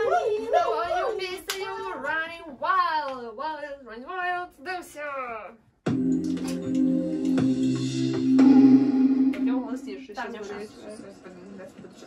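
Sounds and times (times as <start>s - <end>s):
women talking animatedly: 0.0s - 5.0s
hand clap: 1.4s - 1.7s, 6.2s - 7.4s.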